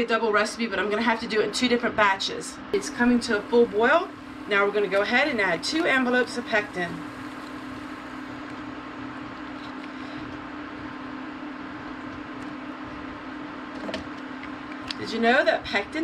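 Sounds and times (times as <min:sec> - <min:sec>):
cooktop humming and hissing: 0:00.0 - 0:16.0
juice boiling in a pot: 0:02.8 - 0:16.0.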